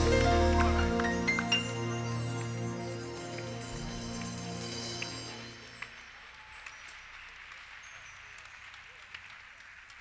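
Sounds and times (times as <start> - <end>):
scattered applause: 0.0 - 10.0.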